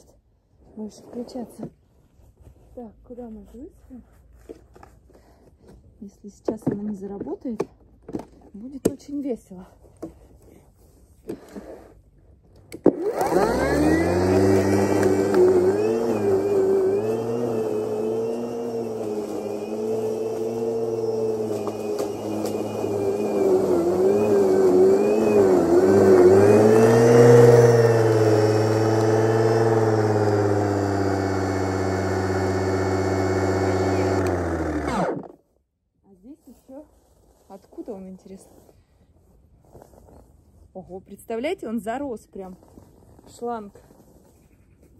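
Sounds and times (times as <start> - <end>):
electric lawn mower cutting grass: 12.9 - 35.3.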